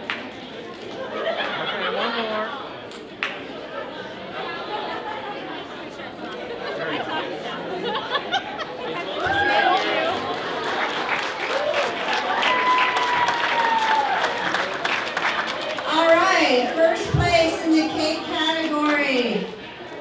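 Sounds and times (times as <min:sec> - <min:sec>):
crowd chatter: 0:00.0 - 0:20.0.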